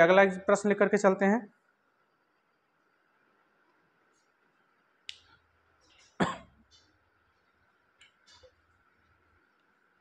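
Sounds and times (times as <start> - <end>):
man coughing: 6.2 - 6.6.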